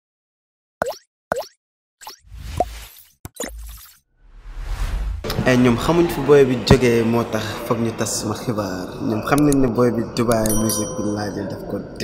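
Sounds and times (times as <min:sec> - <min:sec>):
swishing whooshes: 0:04.2 - 0:05.4.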